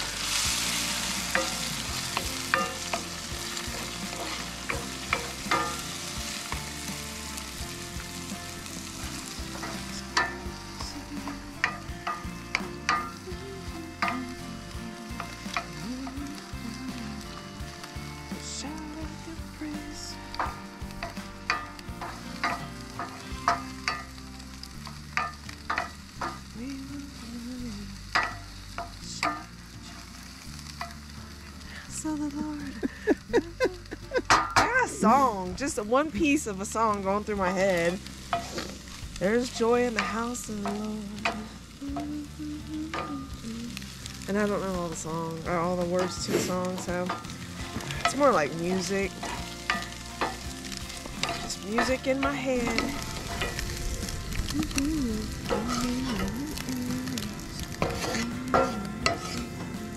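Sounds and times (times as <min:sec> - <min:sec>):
eggs sizzling in a skillet: 0:00.0 - 0:59.9.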